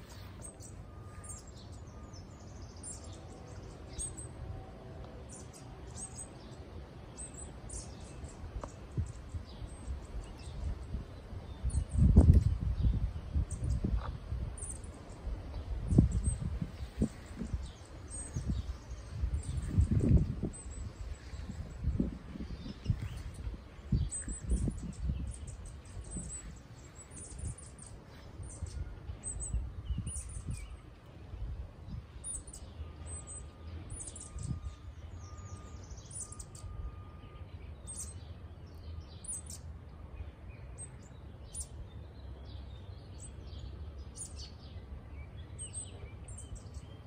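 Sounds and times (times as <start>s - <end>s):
songbirds chirping: 0.0s - 47.0s.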